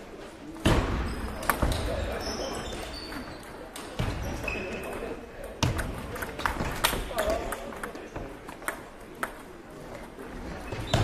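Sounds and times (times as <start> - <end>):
voices echoing in a hall: 0.0 - 11.0.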